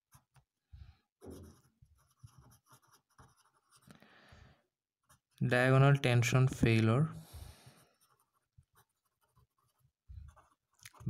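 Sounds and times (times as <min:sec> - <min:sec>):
pen scratching on paper: 0:01.2 - 0:03.9, 0:05.0 - 0:05.4, 0:07.7 - 0:11.0.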